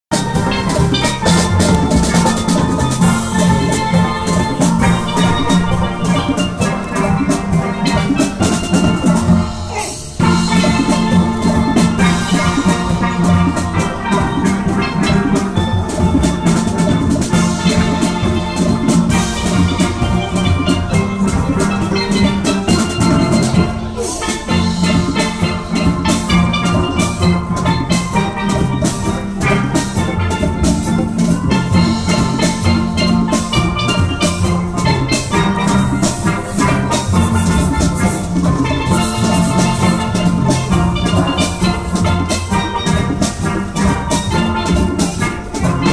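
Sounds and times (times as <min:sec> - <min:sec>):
steel band playing: 0:00.1 - 0:45.9.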